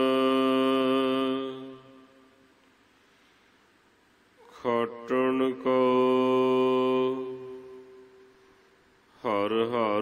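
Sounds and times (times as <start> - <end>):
man chanting: 0.0 - 2.3, 4.4 - 8.2, 9.1 - 10.0.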